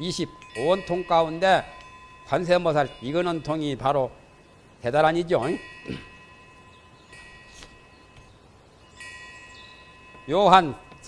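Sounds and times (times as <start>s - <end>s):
faint chimes ringing: 0.0s - 11.0s
faint steady tone: 0.0s - 11.0s.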